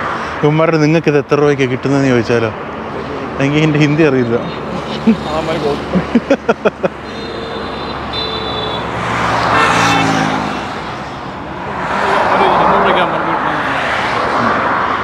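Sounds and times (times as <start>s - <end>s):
highway traffic passing: 0.0s - 15.0s.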